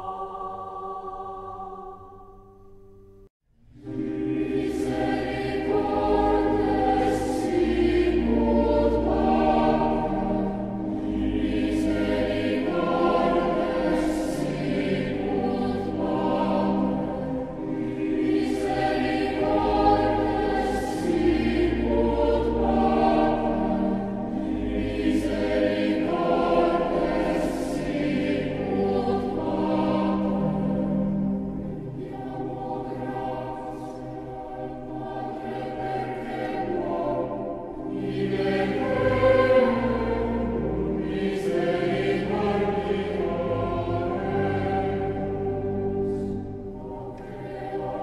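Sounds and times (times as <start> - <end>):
choir singing: 0.0 - 2.8, 3.7 - 48.0.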